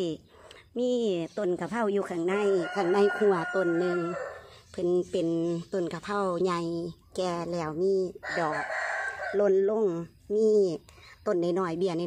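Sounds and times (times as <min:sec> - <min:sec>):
rooster crowing: 0:02.5 - 0:04.5, 0:08.2 - 0:09.6.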